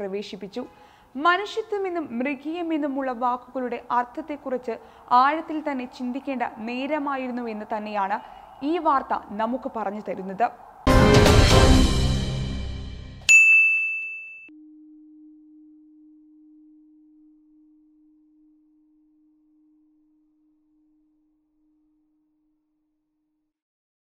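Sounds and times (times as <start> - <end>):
sharp bright ding: 13.2 - 14.5
low ringing tone: 13.3 - 22.4.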